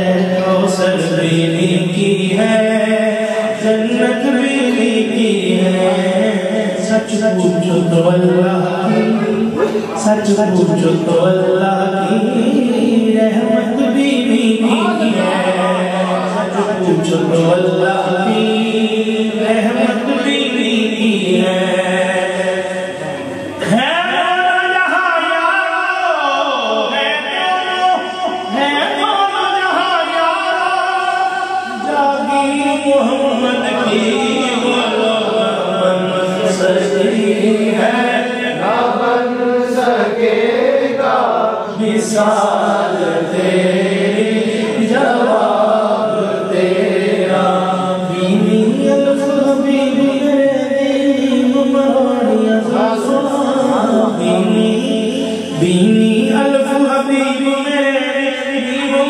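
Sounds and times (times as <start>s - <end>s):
man singing into a microphone: 0.0s - 59.0s.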